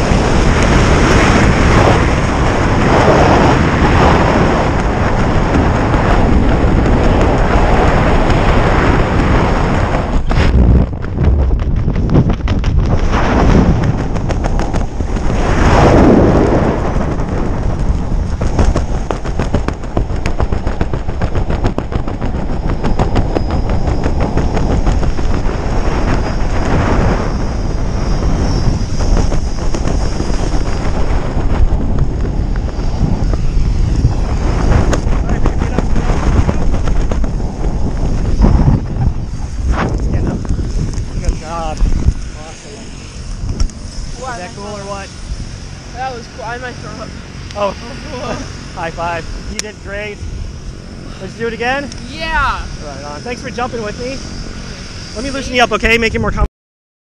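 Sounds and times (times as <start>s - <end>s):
loud wind buffeting microphone: 0.0s - 56.5s.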